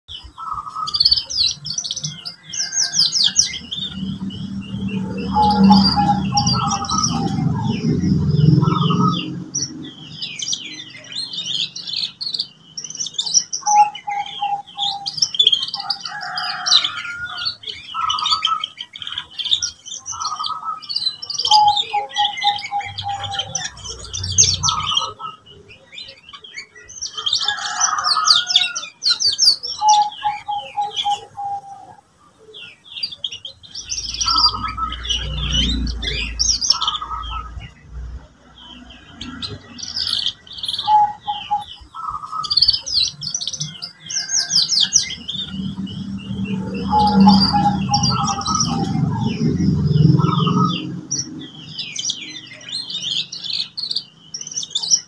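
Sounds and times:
canary singing trills: 0:00.1 - 0:55.0
low rumble: 0:03.3 - 0:10.2, 0:33.6 - 0:39.8, 0:44.8 - 0:51.6.

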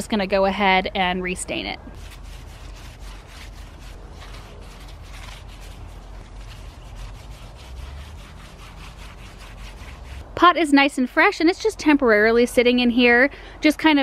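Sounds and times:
rag rubbing on wicker: 0:01.9 - 0:10.2.

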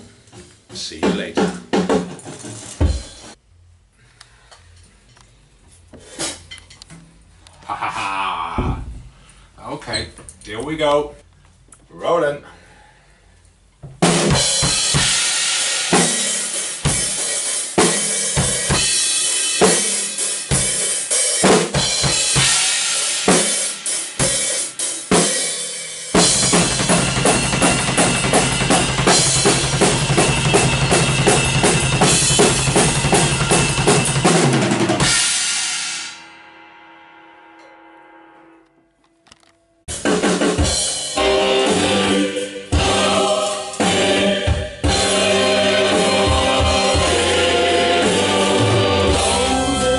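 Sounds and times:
rock drum kit playing: 0:00.0 - 0:03.4, 0:14.0 - 0:36.9, 0:39.9 - 0:49.9
music with steady beat: 0:14.0 - 0:35.6, 0:39.9 - 0:49.9.

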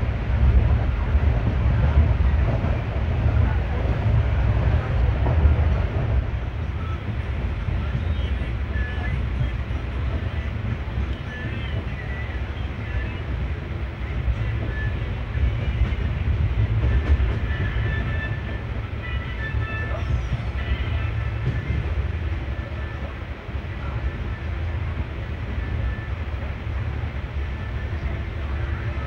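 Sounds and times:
train wheels rumbling on track: 0:00.0 - 0:29.0.

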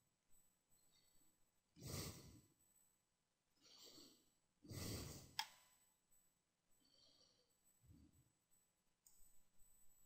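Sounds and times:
breath into microphone: 0:03.6 - 0:05.4.

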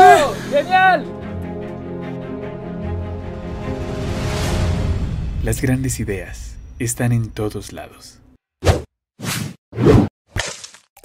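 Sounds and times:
sharp hit: 0:03.4 - 0:07.7.

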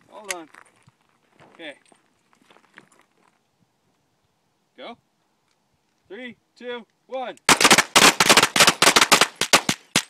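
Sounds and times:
faint ticks and rustles: 0:00.2 - 0:04.4.

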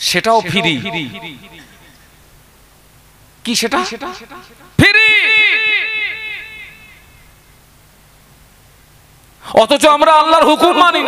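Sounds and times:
sound system background noise: 0:00.0 - 0:11.0
shouted syllable echoing: 0:03.7 - 0:07.0.

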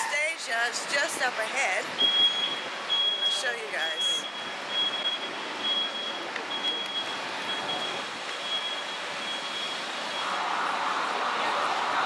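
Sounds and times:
city street traffic: 0:00.0 - 0:12.0
high electronic beep: 0:02.0 - 0:10.3.

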